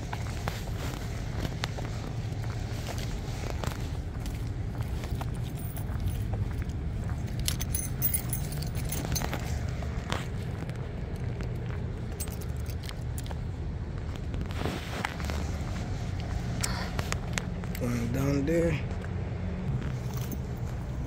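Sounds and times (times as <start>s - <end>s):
footsteps on asphalt: 0.0s - 21.0s
steady low rumble: 0.0s - 21.0s.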